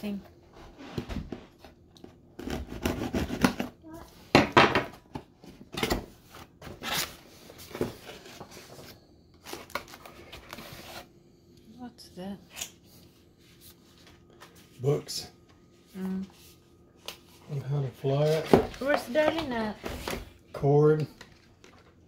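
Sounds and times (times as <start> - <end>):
cardboard and plastic rustling: 5.0 - 11.1, 16.0 - 22.0.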